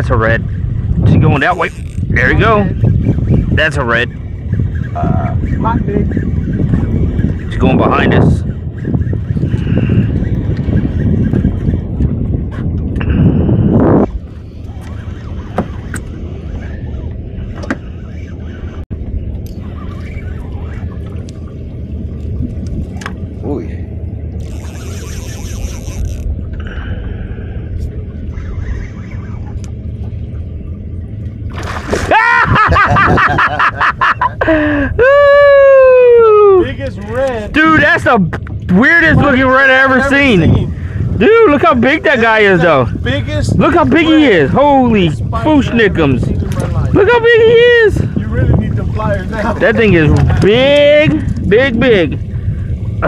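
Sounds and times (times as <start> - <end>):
wind buffeting microphone: 0.0 - 53.0
excited men's voices: 32.1 - 52.2.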